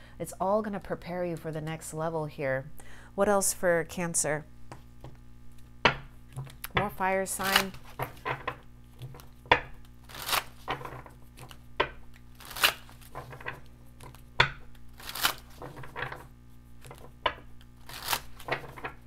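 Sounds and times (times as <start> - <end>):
cards swishing while shuffled: 14.9 - 15.7, 17.8 - 18.5.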